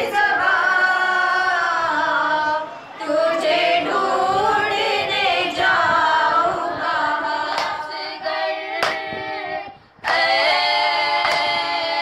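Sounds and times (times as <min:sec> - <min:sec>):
women chanting in unison: 0:00.0 - 0:12.0
hands slapping chests: 0:07.5 - 0:07.8, 0:08.8 - 0:09.0, 0:11.2 - 0:11.5.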